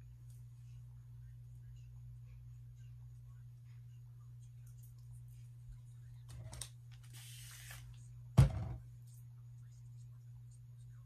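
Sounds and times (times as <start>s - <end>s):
loud thump: 8.4s - 8.8s.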